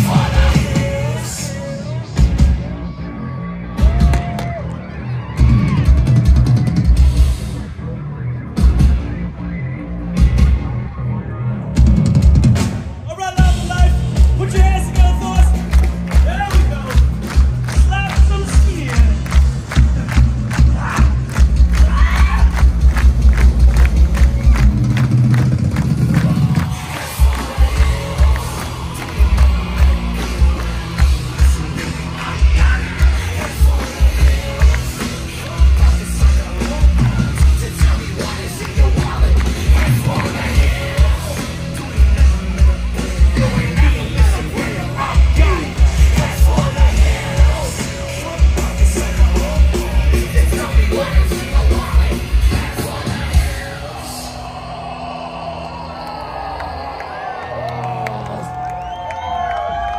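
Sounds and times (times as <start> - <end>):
vocals: 0.0 - 3.0, 12.9 - 22.8, 26.0 - 58.5
live band playing: 0.0 - 4.4, 11.7 - 54.1.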